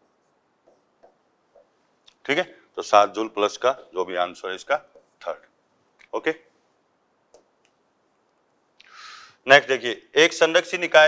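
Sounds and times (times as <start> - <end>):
marker writing on whiteboard: 0.0 - 1.8, 4.8 - 5.4.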